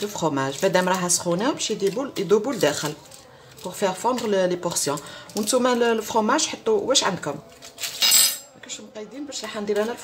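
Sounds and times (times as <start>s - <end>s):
foil wrapper crinkling: 0.0s - 6.4s, 7.0s - 8.0s.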